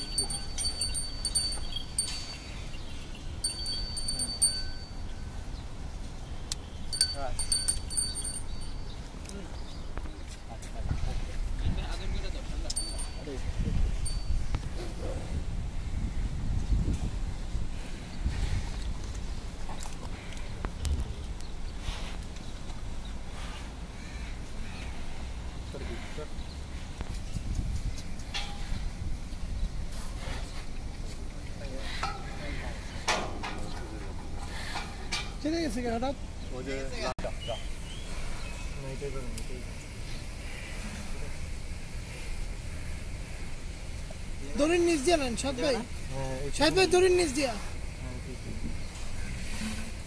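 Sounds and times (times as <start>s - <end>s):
small brass bell jingling: 0.0s - 5.2s, 6.9s - 9.0s, 12.7s - 14.5s
crows cawing: 23.9s - 26.3s.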